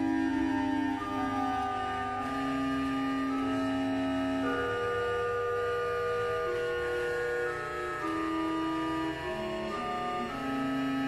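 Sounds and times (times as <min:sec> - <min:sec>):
pipe organ playing sustained chords: 0:00.0 - 0:11.0.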